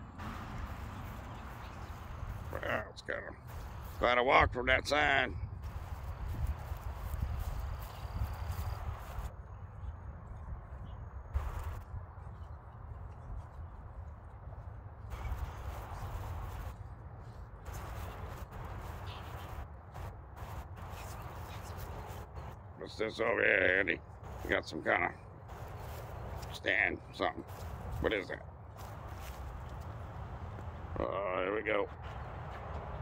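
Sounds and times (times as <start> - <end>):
footsteps on grass: 0.2 - 2.8, 3.4 - 4.1, 5.6 - 9.3, 11.4 - 31.0.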